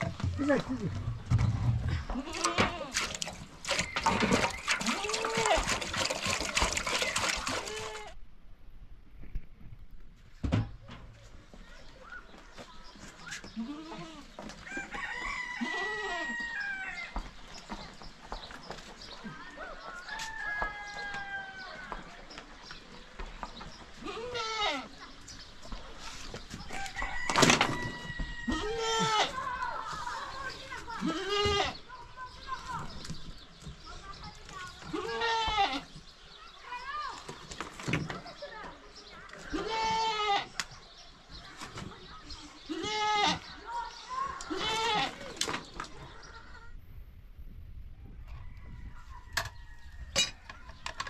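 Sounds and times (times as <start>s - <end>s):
goat bleating: 2.0s - 3.0s, 13.6s - 14.4s, 15.6s - 16.4s, 24.0s - 24.9s, 28.5s - 29.5s, 31.0s - 31.8s, 34.9s - 35.9s, 39.5s - 40.6s, 42.7s - 43.5s, 44.4s - 45.2s
rooster crowing: 14.6s - 17.2s, 19.7s - 22.0s, 26.8s - 28.8s.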